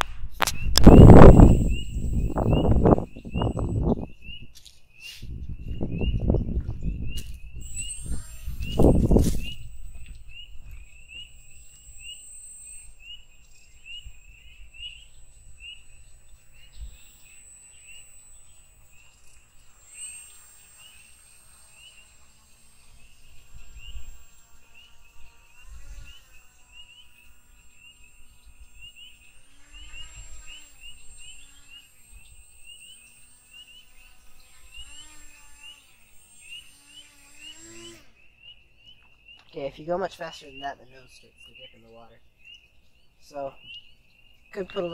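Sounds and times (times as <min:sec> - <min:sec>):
electric propeller motor whining: 0:00.0 - 0:04.3, 0:05.5 - 0:38.2
high chirping calls: 0:00.4 - 0:44.9
low rumble on microphone: 0:05.2 - 0:11.0.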